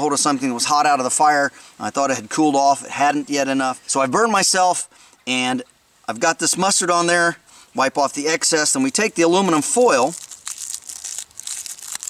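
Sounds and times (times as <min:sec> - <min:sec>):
aluminum foil crinkling: 0:09.6 - 0:12.0.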